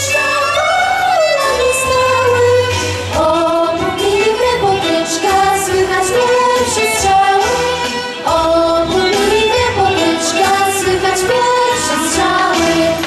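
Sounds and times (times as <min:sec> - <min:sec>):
girls' vocal group singing: 0:00.0 - 0:13.0
instrumental accompaniment with bass: 0:00.0 - 0:13.0.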